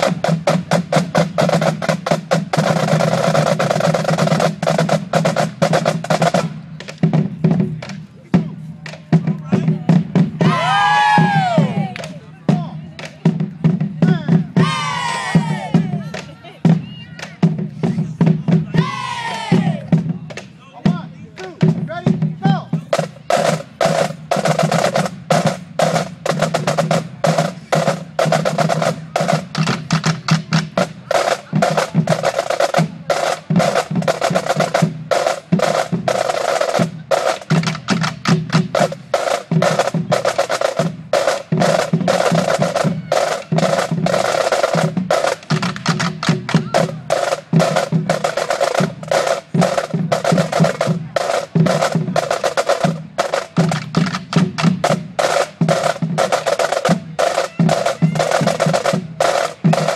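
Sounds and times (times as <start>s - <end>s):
marching snare and bass drums: 0.0s - 59.9s.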